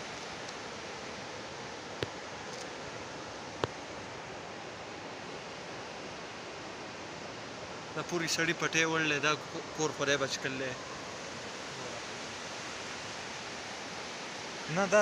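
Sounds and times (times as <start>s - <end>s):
river rushing over boulders: 0.0s - 15.0s.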